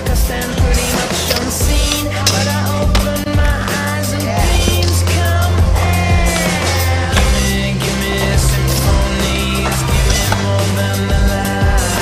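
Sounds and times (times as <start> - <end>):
hip-hop music with heavy bass: 0.0 - 12.0
skateboards clacking and sliding: 0.0 - 12.0.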